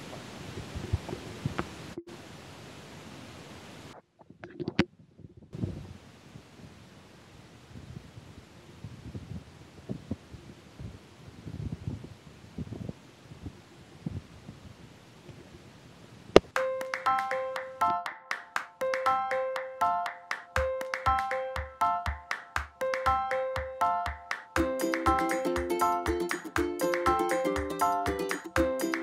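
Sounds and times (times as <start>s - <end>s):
wind hissing over microphone: 0.0s - 2.0s, 5.5s - 6.9s, 7.6s - 16.3s.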